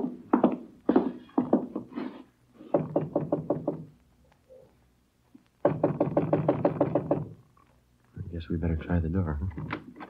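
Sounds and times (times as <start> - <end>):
rapid knocking on door: 2.7 - 3.9, 5.6 - 7.4.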